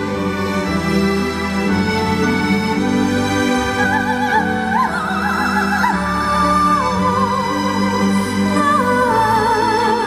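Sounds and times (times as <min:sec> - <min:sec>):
soprano singing wordless melody: 0:01.6 - 0:10.0.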